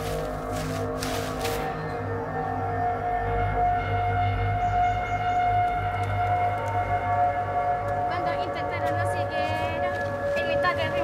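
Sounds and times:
ambient background music: 0.0s - 11.0s.

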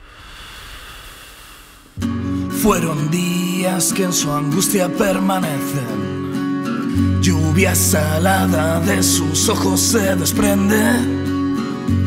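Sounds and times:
static hiss: 0.0s - 2.0s.

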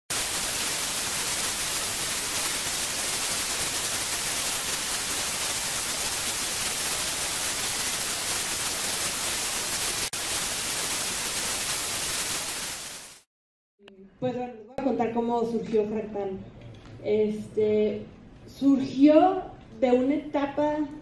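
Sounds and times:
television static hiss: 0.1s - 13.2s.

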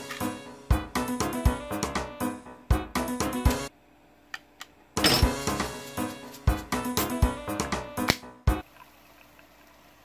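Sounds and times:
background music: 0.0s - 3.7s, 4.9s - 8.6s
soda pouring into water: 8.6s - 10.0s.

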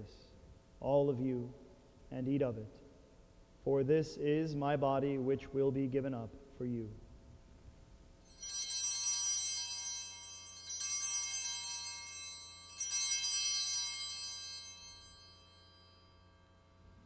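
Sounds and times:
altar bells ringing: 8.2s - 17.0s.

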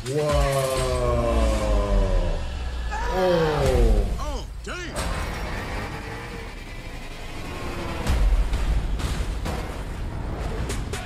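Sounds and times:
car engine and road noise: 3.6s - 11.0s.

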